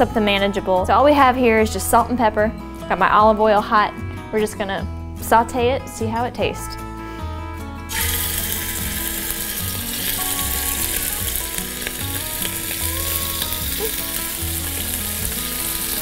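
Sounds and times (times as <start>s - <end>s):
meat sizzling in a frying pan: 7.9s - 16.0s.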